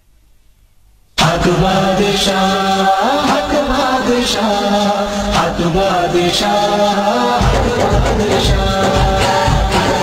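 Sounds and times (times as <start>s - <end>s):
chorus of voices chanting: 1.2s - 10.0s.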